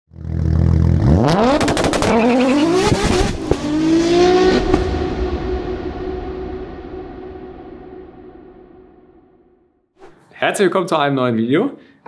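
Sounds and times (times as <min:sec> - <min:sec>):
car engine revving: 0:00.1 - 0:08.7.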